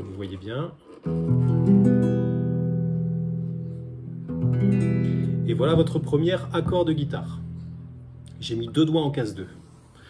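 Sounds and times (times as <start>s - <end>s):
acoustic guitar chord strummed: 1.3s - 8.6s.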